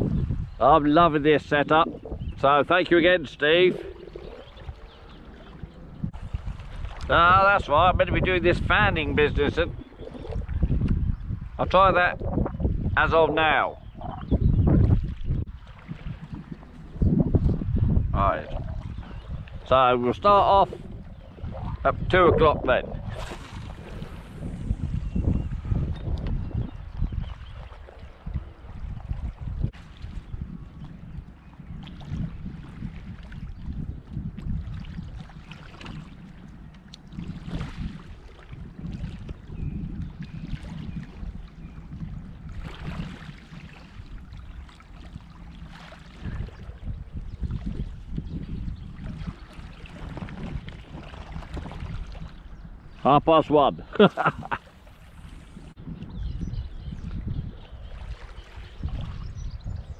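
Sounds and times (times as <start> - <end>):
wind buffeting microphone: 0.0 - 59.9
waves lapping on shingle: 0.8 - 12.2, 21.7 - 25.0, 31.8 - 39.4, 42.5 - 48.2, 48.9 - 55.8.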